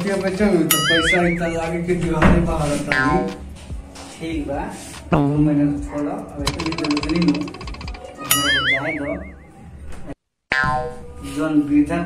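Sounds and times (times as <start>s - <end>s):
cartoon boing: 0.7s - 1.4s, 8.2s - 9.5s, 10.5s - 11.0s.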